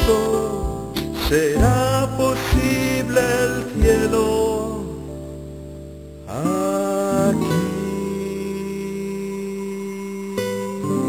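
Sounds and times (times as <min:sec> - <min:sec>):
long held music chord: 0:00.0 - 0:11.0.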